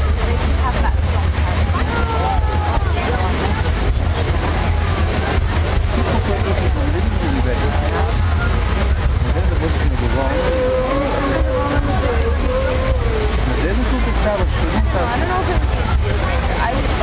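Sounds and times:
crowd talking: 0.0 - 17.0
fountain water jets rushing: 0.0 - 17.0.

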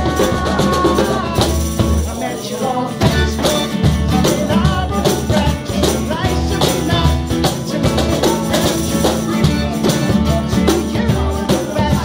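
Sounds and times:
acoustic guitar strumming: 0.0 - 12.0
man singing: 0.0 - 12.0.

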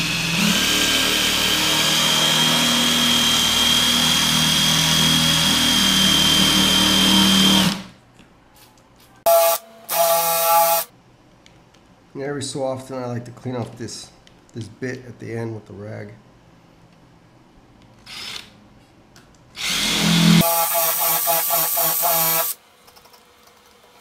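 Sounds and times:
drill grinding through tile: 0.0 - 7.9, 19.6 - 22.6
short drill bursts: 9.3 - 10.9, 19.6 - 22.6.

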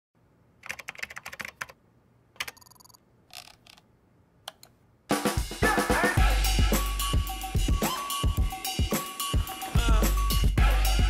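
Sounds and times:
computer keyboard typing: 0.6 - 1.8, 2.4 - 3.8
click: 4.4 - 4.8.

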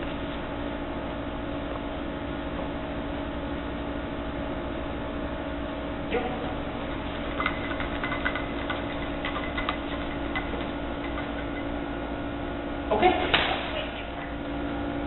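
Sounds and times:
steady hum: 0.0 - 15.0.

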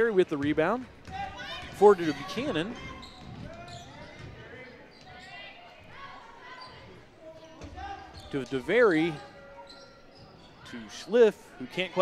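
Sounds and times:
echoing crowd and player voices: 0.0 - 12.0.

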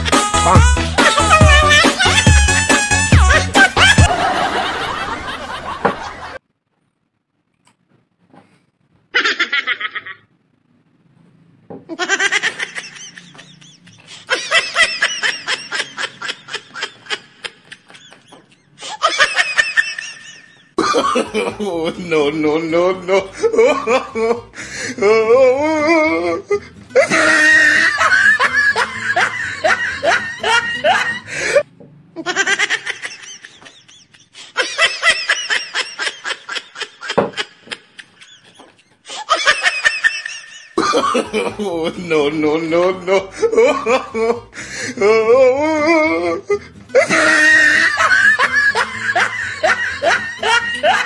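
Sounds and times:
person giggling: 0.4 - 4.1, 11.9 - 22.0, 23.0 - 31.6, 32.2 - 35.2, 35.8 - 39.8, 42.8 - 51.0
person laughing high-pitched: 0.4 - 4.1, 25.0 - 31.6, 42.9 - 51.0
fuller-sounding voice: 20.9 - 28.0, 40.9 - 47.8.

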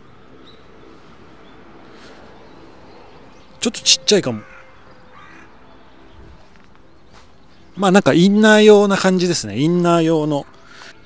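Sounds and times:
faint distant bird call: 0.0 - 7.8.

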